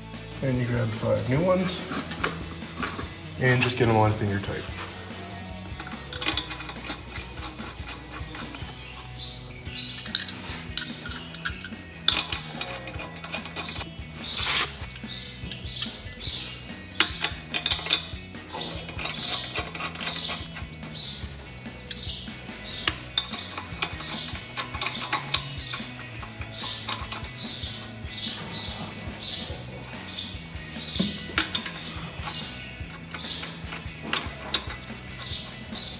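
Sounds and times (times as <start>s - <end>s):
lug nuts clicking and clinking: 1.6s - 35.9s.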